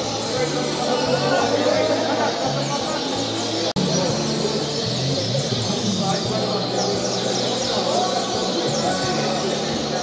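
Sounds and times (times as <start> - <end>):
songbirds chirping and trilling: 0.0 - 10.0.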